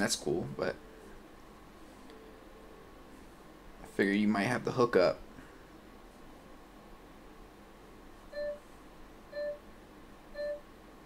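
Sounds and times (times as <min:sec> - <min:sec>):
short electronic beeps: 0:08.4 - 0:08.6, 0:09.3 - 0:09.6, 0:10.4 - 0:10.6.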